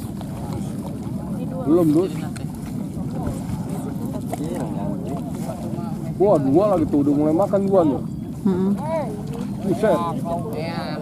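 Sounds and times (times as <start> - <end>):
people talking and calling out: 0.3 - 11.0.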